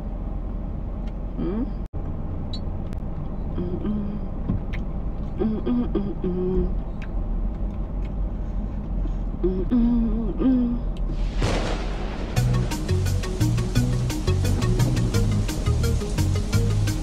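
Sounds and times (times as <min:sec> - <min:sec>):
woman humming: 0:01.4 - 0:01.9, 0:03.5 - 0:04.4, 0:05.4 - 0:06.8, 0:09.4 - 0:11.0.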